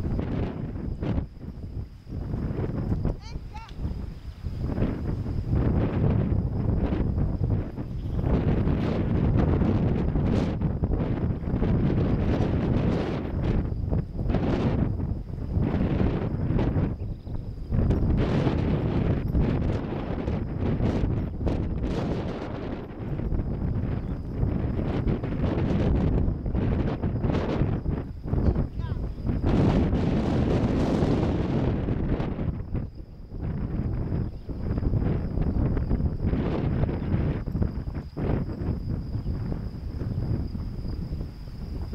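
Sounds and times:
wind buffeting microphone: 0.0 - 41.9.

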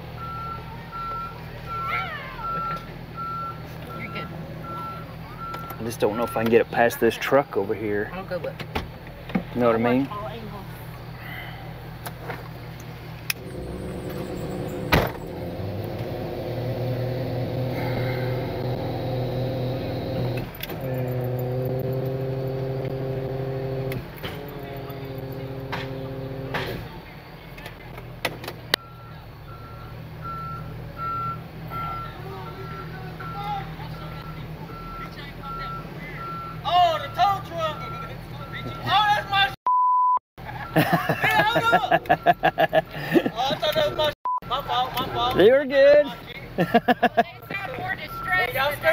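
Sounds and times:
truck engine humming: 0.0 - 39.6, 40.4 - 48.9
backup alarm beeping: 0.2 - 6.5, 28.8 - 39.0, 41.8 - 42.8, 47.9 - 48.7.

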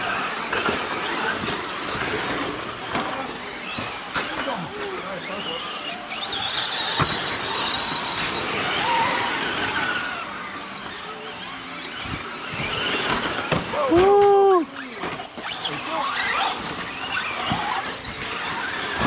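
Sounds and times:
electric motors whining: 0.0 - 19.0
high-pitched motor whine sweeping: 0.0 - 19.0.

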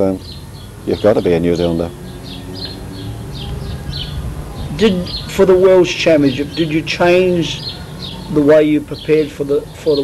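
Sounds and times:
steady low hum: 0.0 - 9.2
small birds chirping: 0.0 - 10.0.

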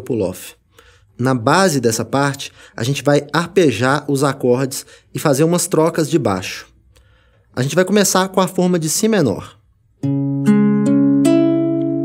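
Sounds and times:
classical guitar arpeggio: 10.0 - 12.0.

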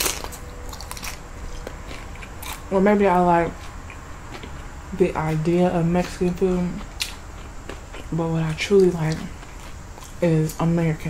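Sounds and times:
chewing crackles: 0.0 - 2.7, 3.4 - 10.7
chip crunching: 0.0 - 11.0.

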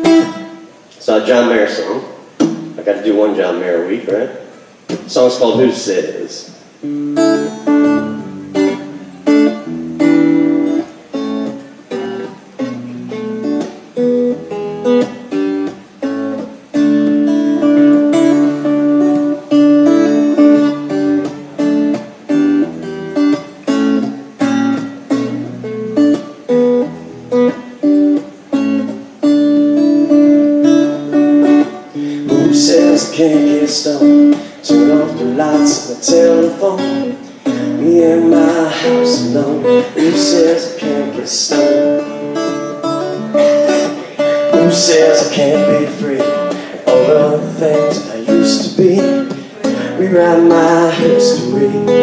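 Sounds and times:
acoustic guitar strumming: 0.0 - 52.0
man singing: 32.0 - 52.0.

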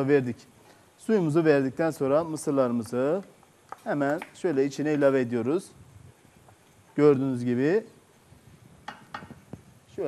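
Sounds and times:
wooden spoon tapping a pot: 8.8 - 9.4.

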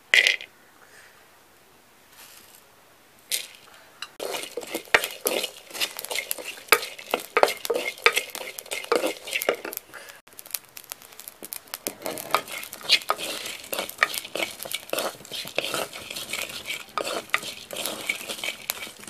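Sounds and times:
ladle scraping a clay pot: 3.3 - 9.9, 10.9 - 19.0
nuts and spices rattling: 3.3 - 19.0.

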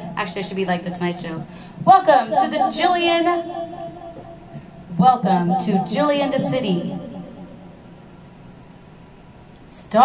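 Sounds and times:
speaker hiss and low hum: 0.0 - 10.0.

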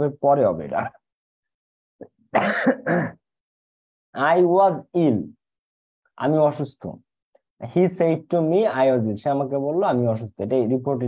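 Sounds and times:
man coughing: 2.3 - 3.3.

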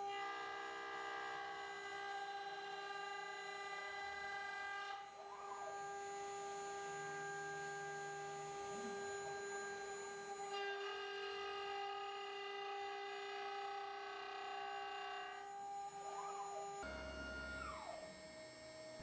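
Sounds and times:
router spindle high whine: 0.0 - 19.0.

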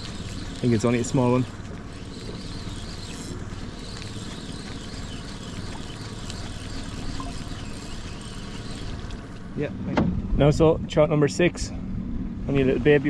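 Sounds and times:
outboard motor running: 0.0 - 13.0.

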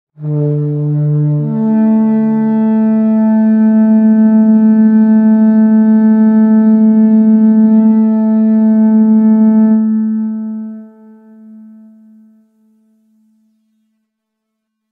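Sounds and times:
deep war horn blowing: 0.1 - 13.7.

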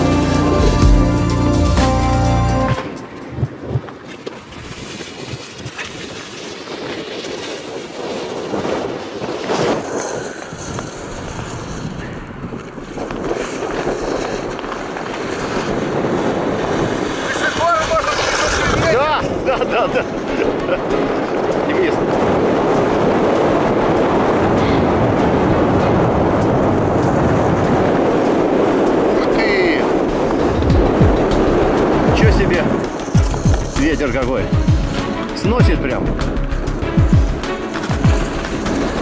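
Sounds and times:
background music: 0.0 - 4.0, 19.4 - 39.0
board sliding on snow and ice: 0.0 - 39.0
wind buffeting microphone: 2.5 - 39.0.

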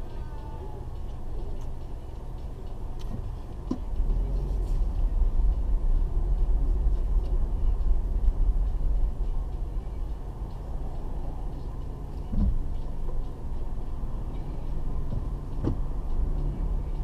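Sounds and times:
car engine rumble: 0.0 - 17.0
road noise inside car: 0.0 - 17.0.

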